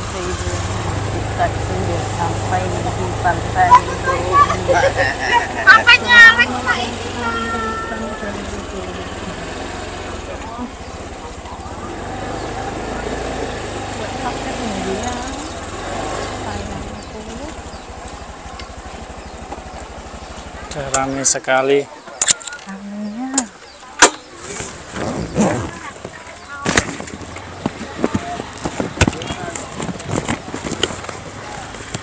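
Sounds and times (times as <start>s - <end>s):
indistinct voices: 0.0s - 32.0s
low engine hum: 0.0s - 32.0s
outdoor background noise: 0.0s - 32.0s.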